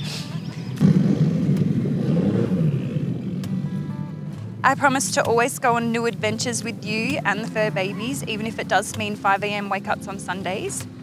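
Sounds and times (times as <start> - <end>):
car engine under throttle: 0.6 - 11.0.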